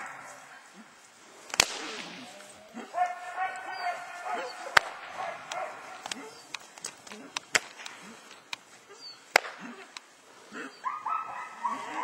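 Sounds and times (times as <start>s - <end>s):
sharp clicks: 4.7s - 8.7s.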